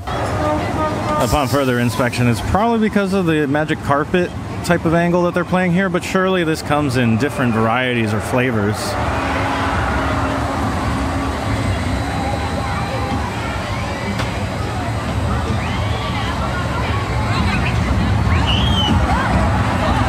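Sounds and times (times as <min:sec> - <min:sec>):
crowd chatter: 0:00.0 - 0:20.0
roller coaster rumbling: 0:00.0 - 0:20.0.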